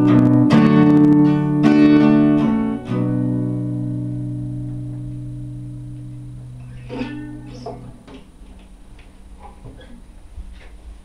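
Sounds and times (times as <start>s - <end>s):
guitar being moved clicks: 6.0s - 10.0s.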